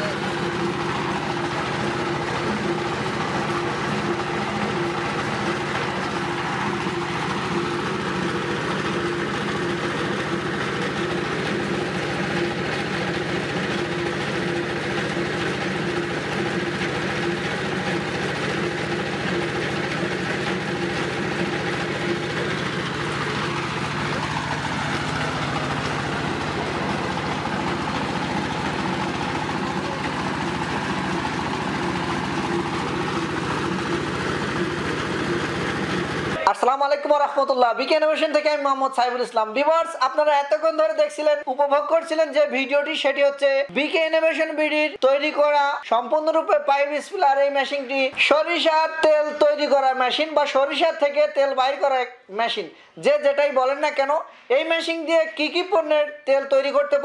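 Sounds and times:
oil expeller machine running: 0.0s - 38.7s.

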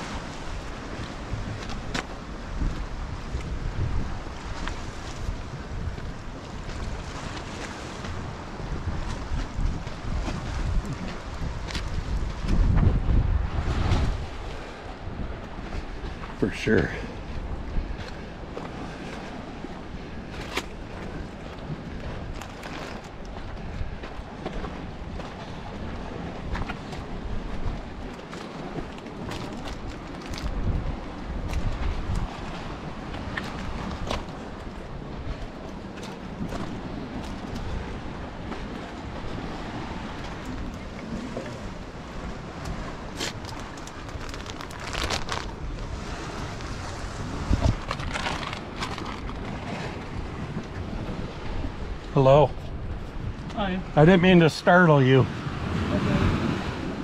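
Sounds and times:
wind buffeting microphone: 0.0s - 54.4s, 55.2s - 57.0s.

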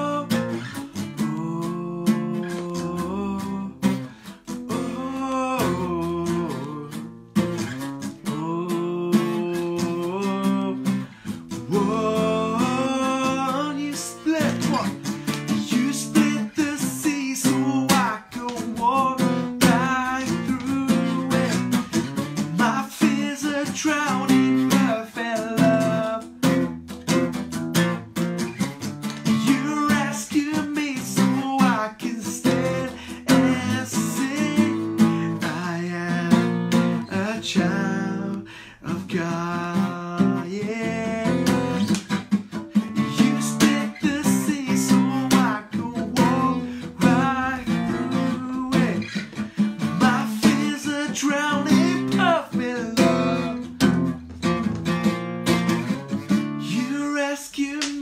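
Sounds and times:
man singing: 0.0s - 27.2s, 29.0s - 54.6s, 56.2s - 58.0s
acoustic guitar strummed: 0.0s - 58.0s.

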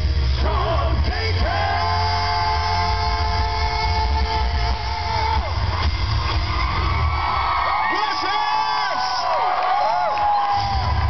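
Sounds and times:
live rock band playing: 0.0s - 7.6s.

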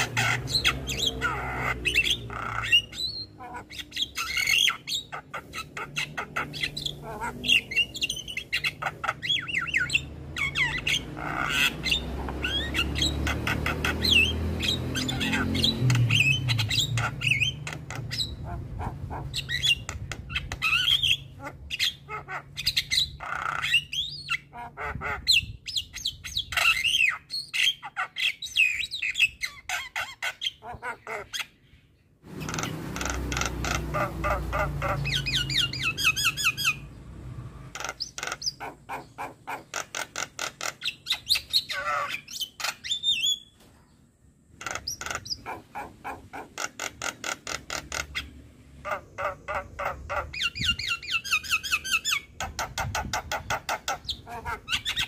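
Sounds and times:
bird squawks chatters and whistles: 44.6s - 55.0s.

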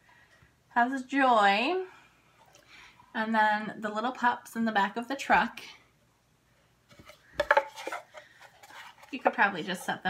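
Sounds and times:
wood scraping and tapping: 6.9s - 9.2s.

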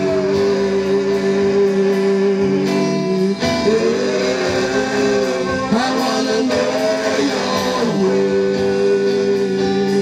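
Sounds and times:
instrumental backing: 0.0s - 10.0s
singers holding long notes: 0.0s - 10.0s.

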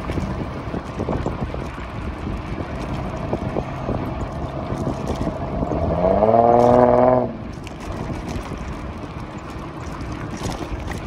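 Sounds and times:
wind rush over microphone: 0.0s - 9.3s
bike tyres rumbling on asphalt: 0.0s - 11.0s.

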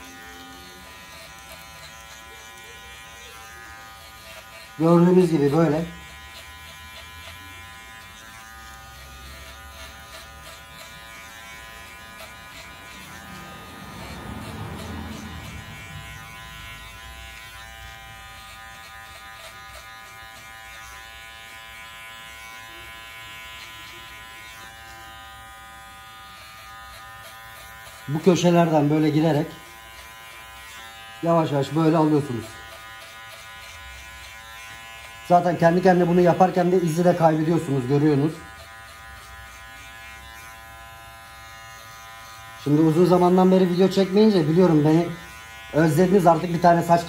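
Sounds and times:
electric hair clipper buzzing: 0.0s - 47.0s.

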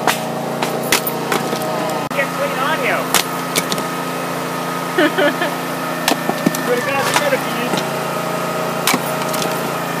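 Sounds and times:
axe splitting firewood crack: 0.0s - 2.0s, 3.1s - 4.0s, 6.0s - 9.8s
steady engine hum: 0.0s - 10.0s.

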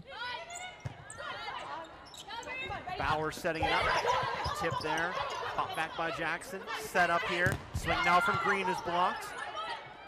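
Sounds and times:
shoes squeaking on hardwood court: 0.5s - 5.6s.

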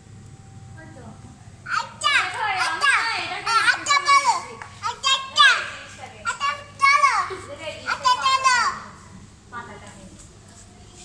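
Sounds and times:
young child speaking: 1.7s - 9.0s.

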